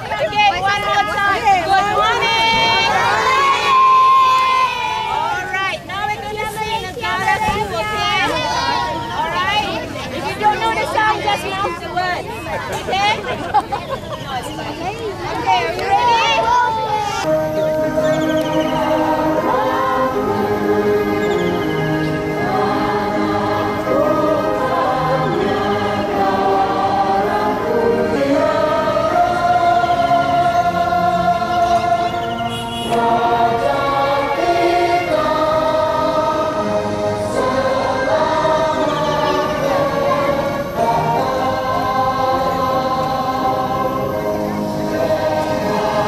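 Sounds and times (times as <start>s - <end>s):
group singing in unison: 17.3s - 46.0s.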